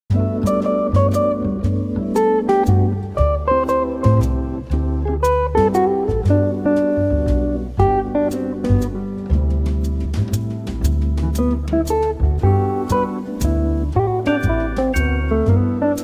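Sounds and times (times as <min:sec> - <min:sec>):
bass line: 0:00.1 - 0:16.0
plucked guitar: 0:00.1 - 0:16.0
light drum hits: 0:05.2 - 0:16.0.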